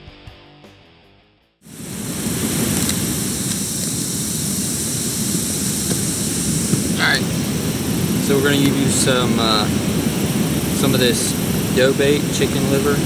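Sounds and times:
water rushing over a dam: 1.7 - 13.0.

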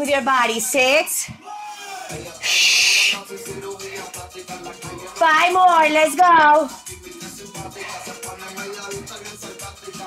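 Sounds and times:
background music: 0.0 - 10.0
woman's forceful shh exhale: 2.4 - 3.2.

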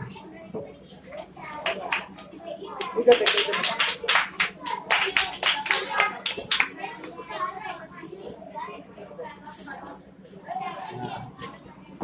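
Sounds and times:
children's voices: 0.0 - 12.0
children clapping hands: 1.6 - 7.2.

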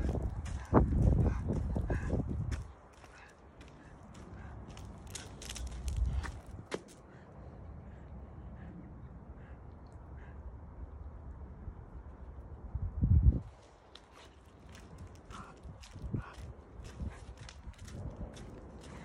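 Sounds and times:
footsteps on asphalt: 0.0 - 7.0, 13.6 - 19.0
low rumble of handling or wind: 0.0 - 19.0.

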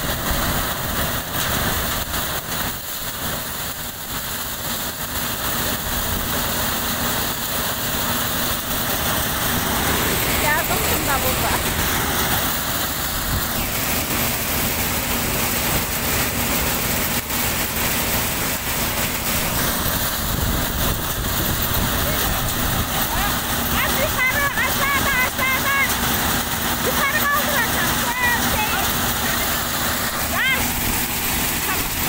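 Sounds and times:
threshing machine running: 0.0 - 32.0.

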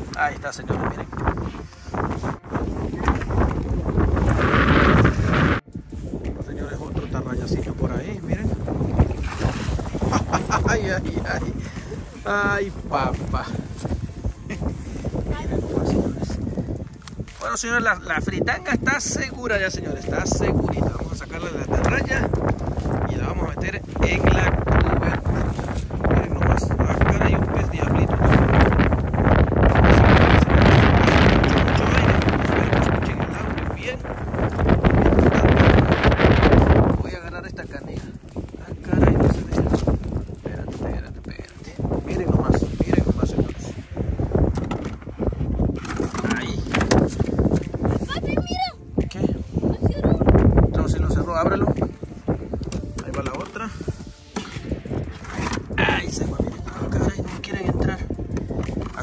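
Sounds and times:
wind buffeting microphone: 0.0 - 59.0
rustling in dry grass: 0.7 - 50.7, 51.6 - 59.0
person speaking: 6.6 - 16.7
knocks and clicks on plastic bucket: 44.5 - 45.0.

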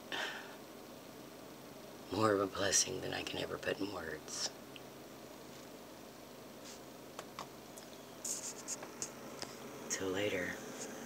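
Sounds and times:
faint steady hum: 0.0 - 11.0
fingers rubbing on camera: 8.2 - 9.6.

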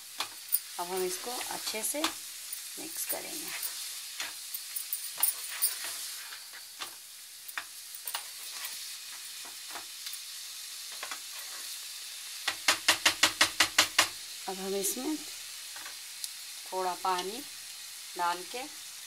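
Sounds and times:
food sizzling in a frying pan: 0.0 - 19.0
spatula scraping and clicking on pan: 3.4 - 10.2, 10.9 - 11.7.

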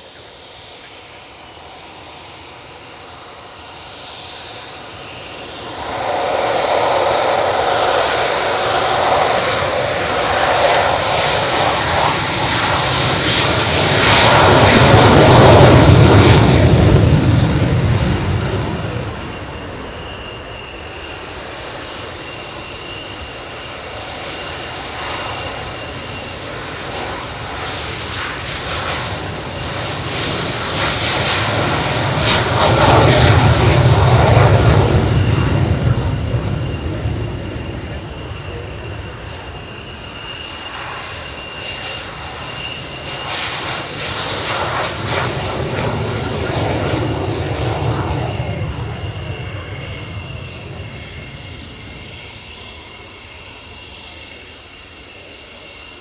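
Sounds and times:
jet taking off: 0.0 - 56.0
steady high jet whine: 0.0 - 56.0.

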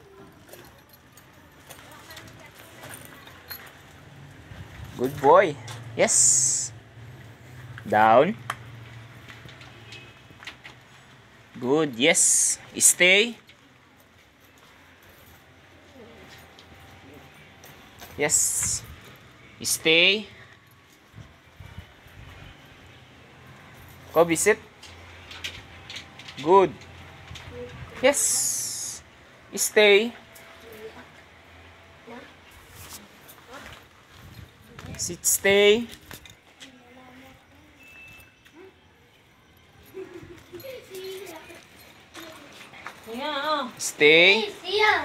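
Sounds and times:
faint footsteps: 7.0 - 11.6, 39.6 - 43.8.

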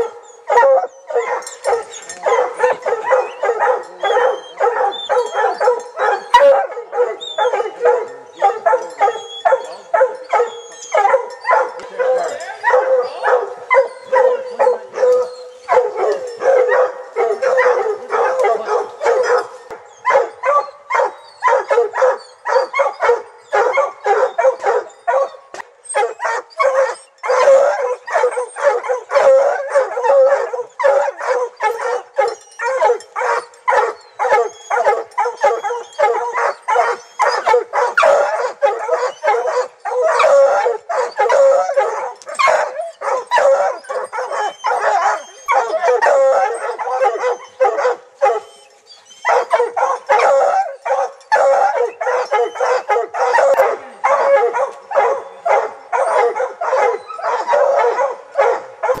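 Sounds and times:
hounds barking and howling: 0.0 - 59.0.

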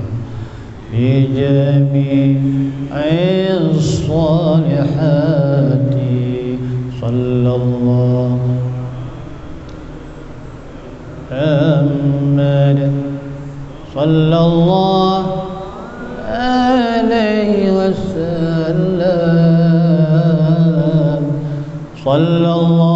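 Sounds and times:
man chanting into a microphone: 0.0 - 9.3, 11.3 - 22.9.

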